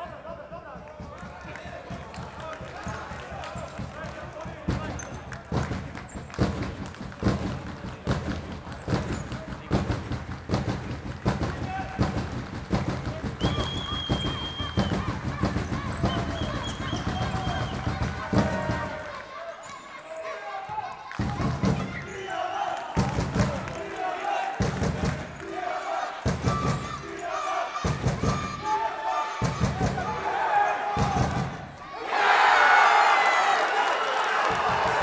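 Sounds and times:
players shouting: 13.0 - 35.0.

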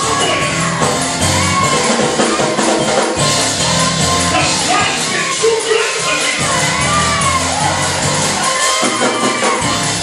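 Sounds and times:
drum kit playing: 0.0 - 10.0
live gospel music: 0.0 - 10.0.

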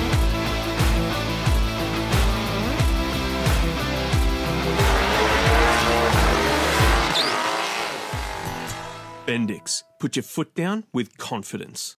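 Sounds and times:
rock music with kick drum: 0.0 - 7.2
car engine running hard: 3.4 - 9.0
tyres squealing: 4.4 - 8.8.

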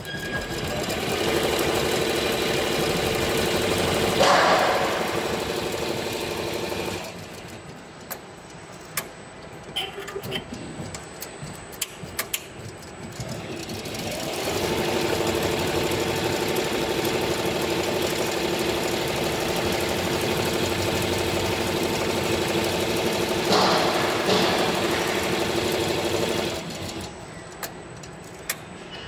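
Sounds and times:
embroidery machine stitching: 0.0 - 7.6, 13.1 - 27.1.

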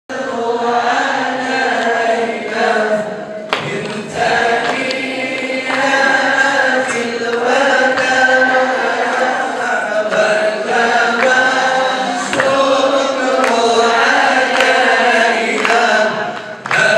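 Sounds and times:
group of voices chanting: 0.1 - 16.9.

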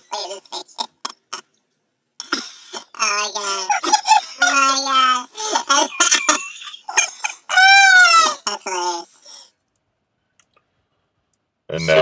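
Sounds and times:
high-pitched voices laughing and squealing: 0.0 - 1.5, 2.2 - 9.5, 11.7 - 12.0.

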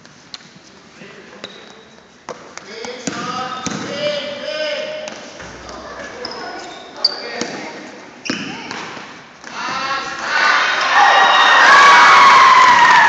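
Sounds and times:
voices shouting in a gym: 9.5 - 13.0.

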